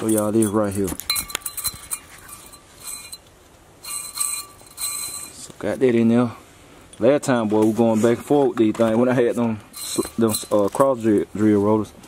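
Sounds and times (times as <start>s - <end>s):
light metallic clinks: 0.0s - 5.5s, 9.7s - 11.2s.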